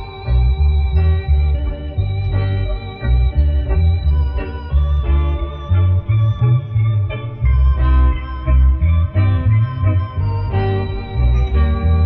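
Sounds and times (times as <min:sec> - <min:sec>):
deep bass notes: 0:00.0 - 0:12.0
guitar and organ: 0:00.0 - 0:12.0.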